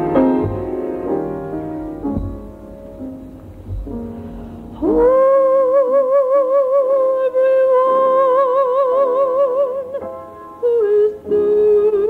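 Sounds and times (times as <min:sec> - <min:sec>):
person singing long note: 0:04.8 - 0:10.0, 0:10.6 - 0:12.0.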